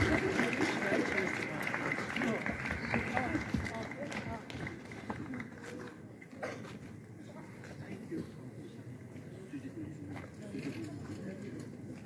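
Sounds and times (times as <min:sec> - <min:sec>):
indistinct talk of people: 0:00.0 - 0:12.0.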